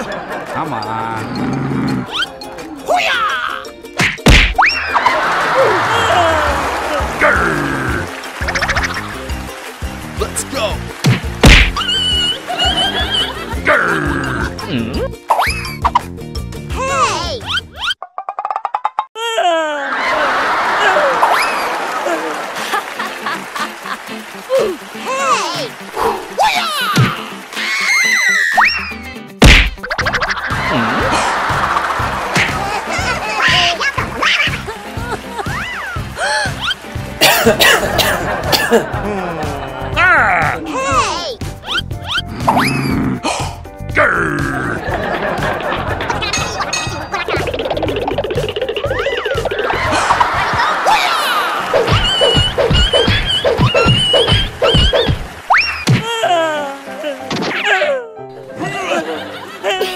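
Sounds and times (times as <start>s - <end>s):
background music: 0.0s - 18.0s, 19.9s - 59.9s
loud cartoon whack: 4.0s - 4.6s, 11.0s - 11.8s, 29.4s - 29.9s, 32.3s - 32.6s, 51.8s - 56.1s.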